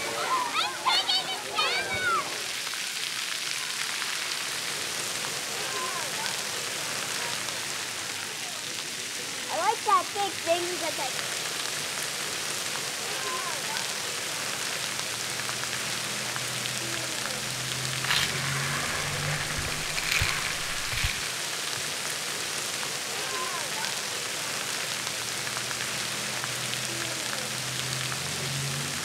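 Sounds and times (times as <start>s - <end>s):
water mist spraying hiss: 14.4s - 23.0s.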